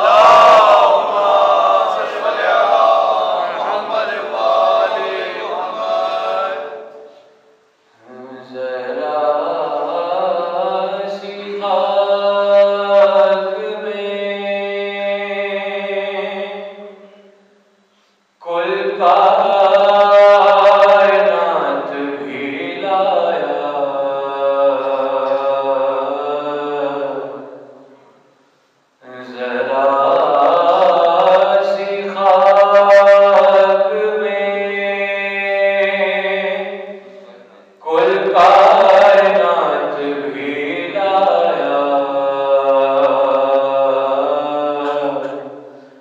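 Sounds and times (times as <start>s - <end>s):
man chanting: 0.0s - 7.2s, 8.0s - 17.2s, 18.4s - 28.0s, 29.0s - 45.9s.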